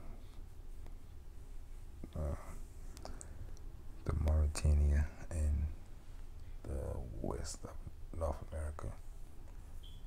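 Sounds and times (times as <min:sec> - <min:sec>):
steady low background hum: 0:00.0 - 0:10.0.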